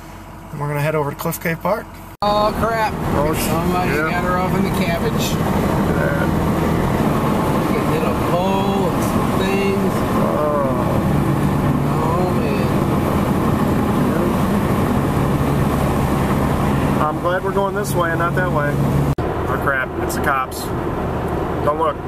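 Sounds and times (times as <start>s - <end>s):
car road and engine noise: 0.0s - 22.0s.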